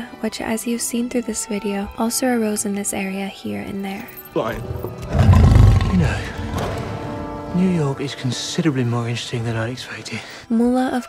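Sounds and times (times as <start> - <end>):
background film music: 0.0 - 11.0
lion roaring: 4.6 - 7.5.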